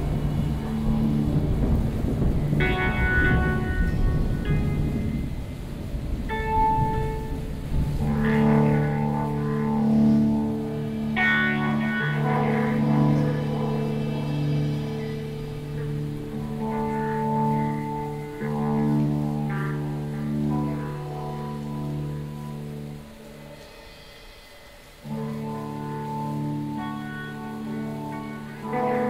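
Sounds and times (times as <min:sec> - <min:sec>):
guitar notes with effects: 0:00.0 - 0:29.0
sustained low notes: 0:00.0 - 0:29.0.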